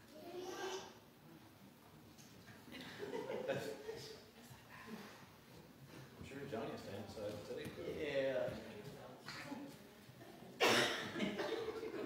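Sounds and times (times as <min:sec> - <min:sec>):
person coughing: 0:10.6 - 0:11.8.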